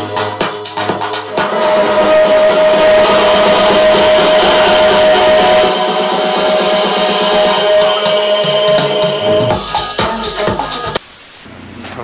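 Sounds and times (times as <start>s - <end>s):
strong held tone: 0.0s - 10.5s
loud music with guitar: 0.0s - 11.0s.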